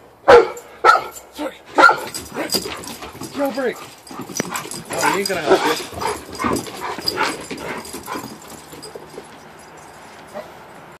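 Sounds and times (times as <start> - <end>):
dog whimpering: 4.2 - 8.3.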